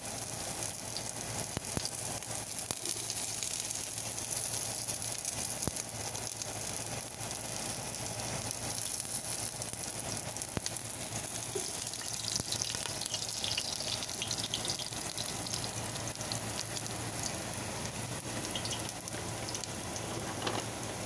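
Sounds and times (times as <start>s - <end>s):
garlic sizzling in hot oil: 0.0s - 21.0s.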